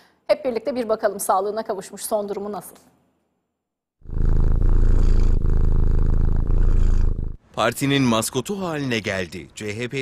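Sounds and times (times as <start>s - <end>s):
cat purring: 4.0s - 7.4s.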